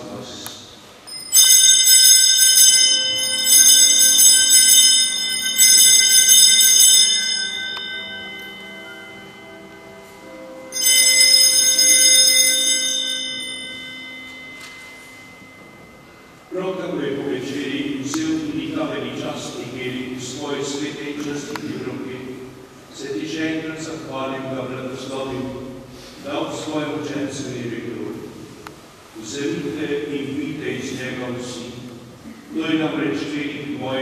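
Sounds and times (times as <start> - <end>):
altar bells ringing: 1.0 - 17.9.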